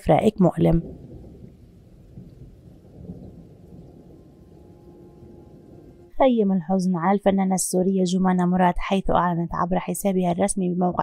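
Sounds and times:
faint sustained tones: 3.0 - 6.3.

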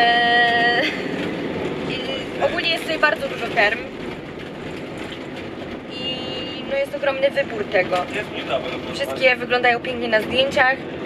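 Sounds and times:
road and engine noise in vehicle: 0.0 - 11.0.

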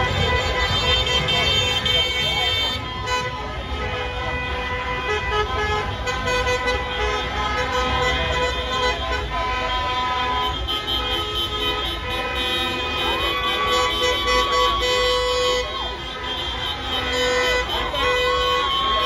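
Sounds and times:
car horns honking: 0.0 - 19.0
crowd voices: 0.0 - 19.0
rumble of slow cars: 0.0 - 19.0.

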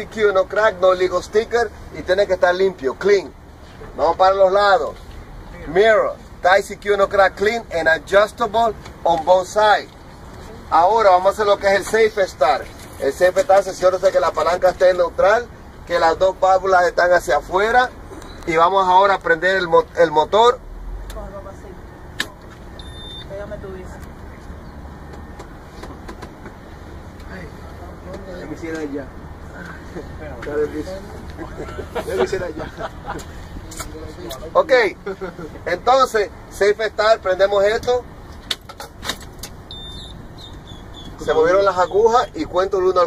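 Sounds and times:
faint high beep: 22.7 - 23.4, 39.7 - 40.2.

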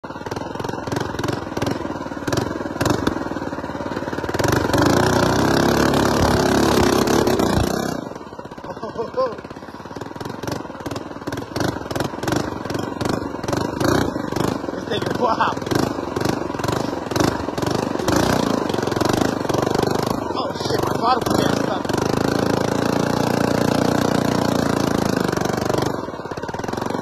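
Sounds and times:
mini bike engine running: 0.0 - 27.0.

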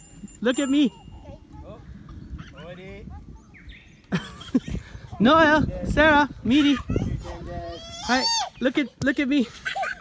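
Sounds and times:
distant children's voices: 0.8 - 5.4.

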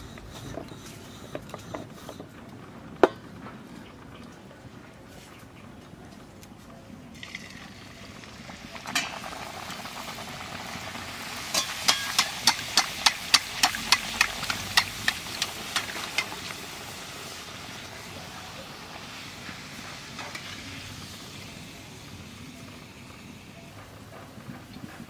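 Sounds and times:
food sizzling in hot oil: 7.2 - 23.5
knock of food entering pan: 11.5 - 15.2
metal spoon tapping: 11.6 - 16.3.

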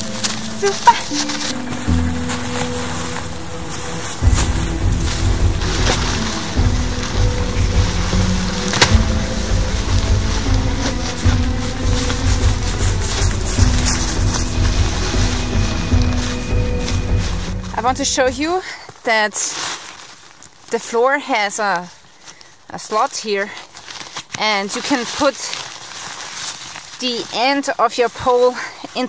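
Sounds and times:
steady bass beat: 0.0 - 18.5
sustained music notes: 0.0 - 18.6.

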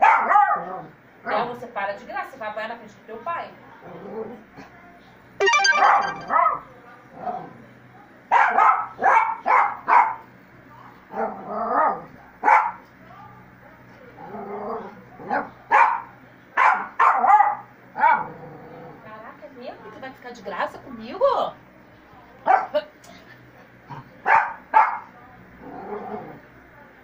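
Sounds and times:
small dog barking: 0.0 - 0.6, 8.3 - 10.2, 12.4 - 12.8, 15.7 - 18.3, 22.5 - 22.8, 24.2 - 25.1.

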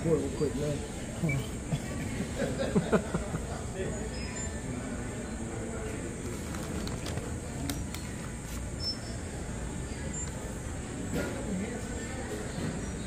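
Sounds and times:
distant indistinct voices: 0.0 - 13.0.

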